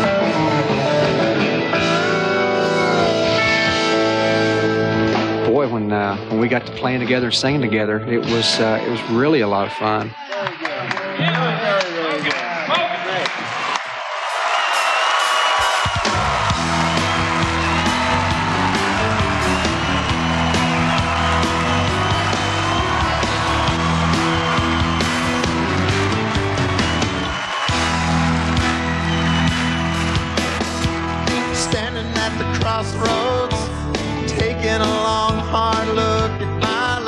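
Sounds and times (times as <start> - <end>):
live country band playing: 0.0 - 10.1, 15.4 - 37.0
crowd noise: 0.0 - 37.0.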